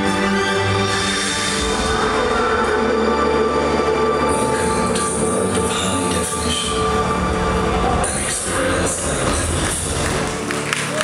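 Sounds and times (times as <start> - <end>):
commercial music over loudspeakers: 0.0 - 11.0.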